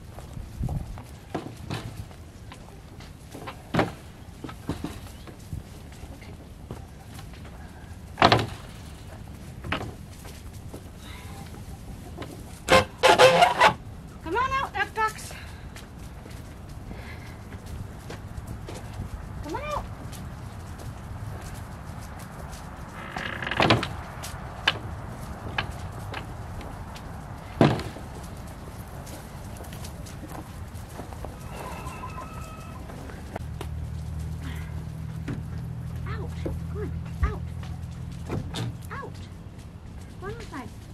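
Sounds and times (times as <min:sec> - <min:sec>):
chickens squawking: 0:11.0 - 0:13.8, 0:31.1 - 0:33.4
soft chicken clucks: 0:31.3 - 0:33.2.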